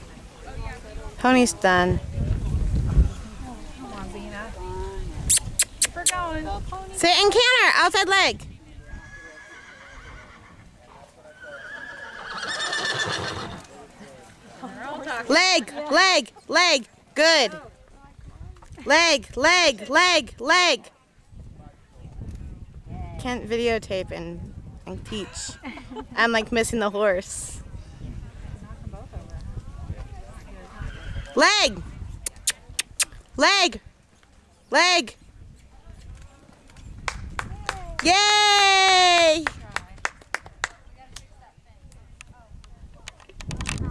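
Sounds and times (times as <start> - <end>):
horse whinnying: 8.8 - 10.6, 11.3 - 13.7, 30.8 - 31.4
faint voices: 27.5 - 38.1.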